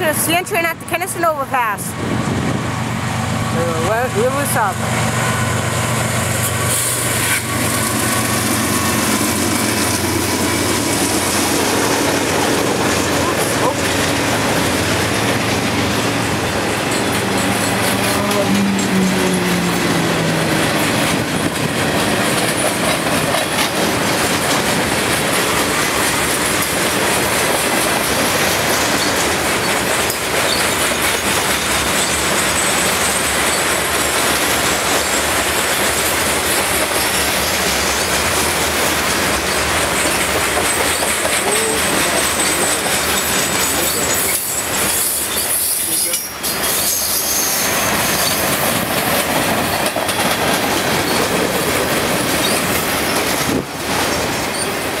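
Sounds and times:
freight train wheels clattering: 2.2 - 55.0
high wheel squeal: 39.5 - 48.6, 54.5 - 54.8.

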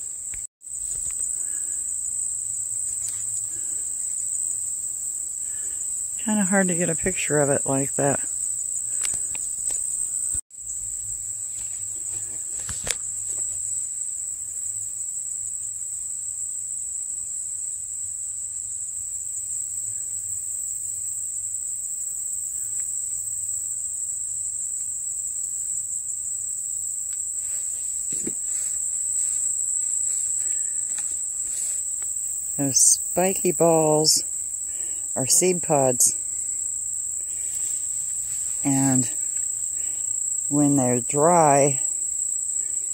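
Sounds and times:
insects trilling: 0.0 - 42.9.

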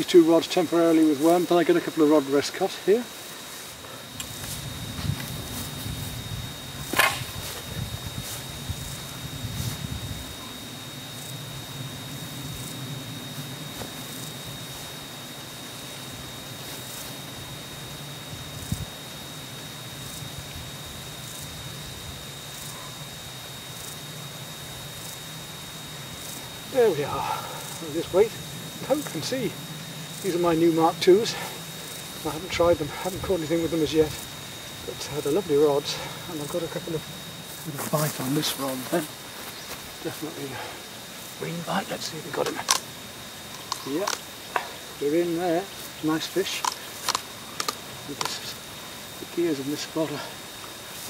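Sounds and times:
thin steady high tone: 0.0 - 51.0.

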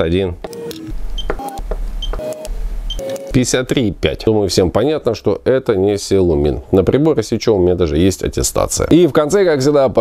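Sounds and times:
hardness tester beeping: 0.5 - 3.4
probe clicks: 0.5 - 3.4.

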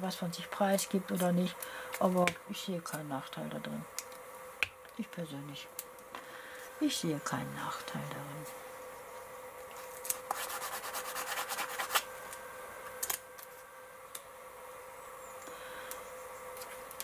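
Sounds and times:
fingers rubbing paper: 10.3 - 12.0.

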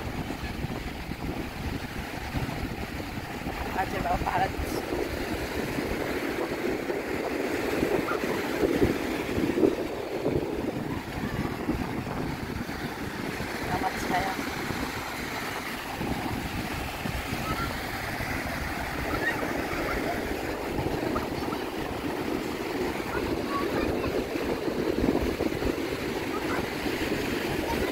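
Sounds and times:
surf washing up a beach: 0.0 - 27.9
wind buffeting microphone: 0.0 - 27.9.

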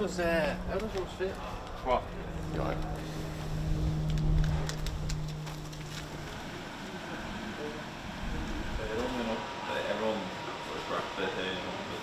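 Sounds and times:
low rumble: 0.0 - 9.5
vehicle engine running: 0.0 - 9.5.

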